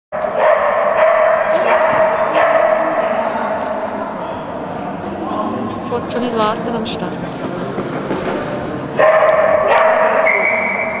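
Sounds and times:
dog barking: 0:00.4 - 0:03.0, 0:09.0 - 0:10.4
steady hum: 0:02.9 - 0:09.7.

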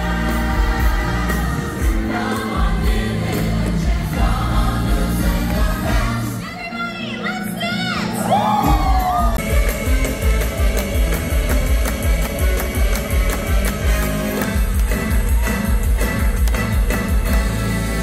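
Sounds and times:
drums and bass dance beat: 0:00.0 - 0:06.4, 0:08.6 - 0:18.0.

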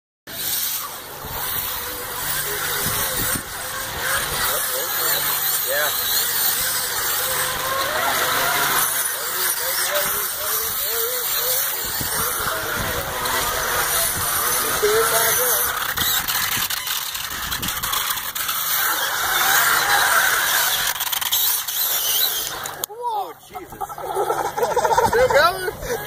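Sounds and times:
electric motor whining: 0:00.3 - 0:22.9.

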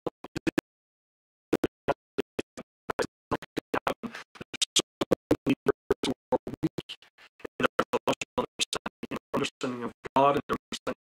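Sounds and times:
man speaking in glitching fragments: 0:02.3 - 0:11.0.

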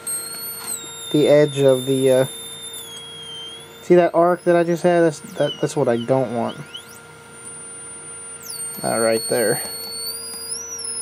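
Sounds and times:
high-pitched electronic whine: 0:00.0 - 0:11.0.

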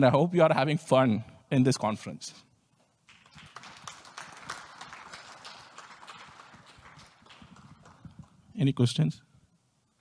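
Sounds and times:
audience applauding: 0:03.1 - 0:08.4.

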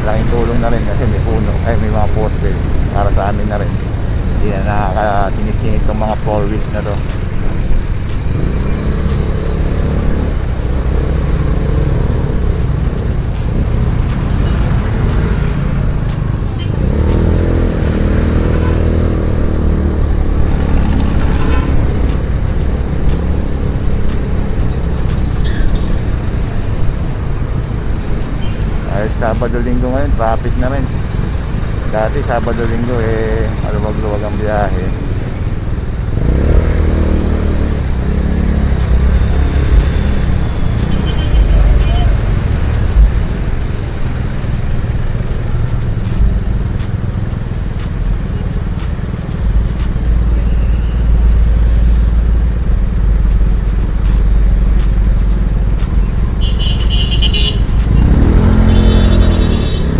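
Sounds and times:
surrounding traffic: 0:00.0 - 0:59.9.

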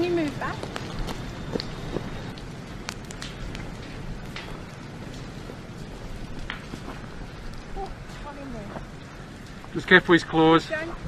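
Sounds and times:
fire rushing and crackling: 0:00.0 - 0:11.0.

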